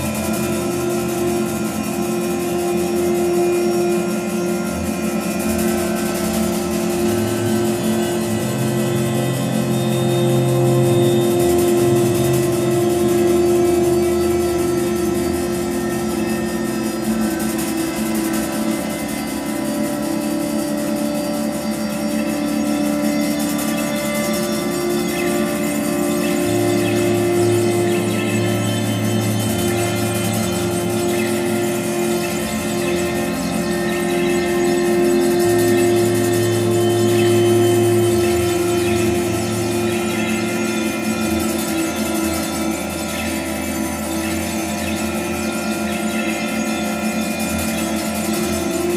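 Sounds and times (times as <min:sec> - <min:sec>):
electronic drone tones: 0:00.0 - 0:48.9
low bass tone: 0:00.0 - 0:48.9.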